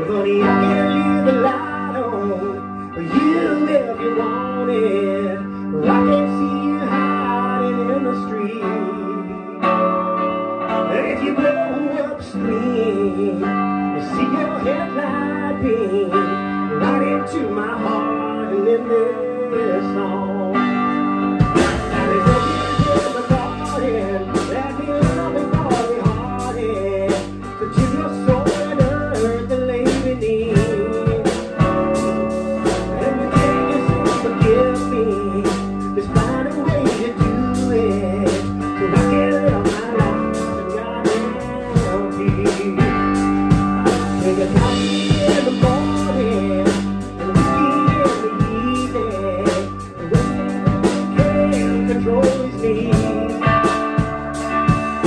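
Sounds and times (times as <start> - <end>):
electric bass guitar: 0.0 - 55.0
guitar: 0.0 - 55.0
drum kit: 20.5 - 55.0.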